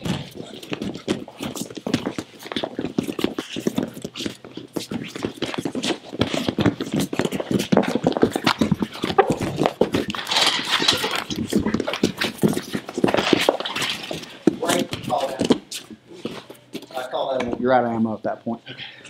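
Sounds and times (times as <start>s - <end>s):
bare feet thudding on mats: 0.0s - 16.9s.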